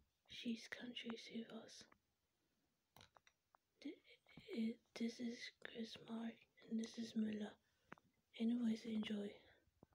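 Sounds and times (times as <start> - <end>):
person speaking softly: 0.3 - 2.0, 3.8 - 7.6, 8.3 - 9.6.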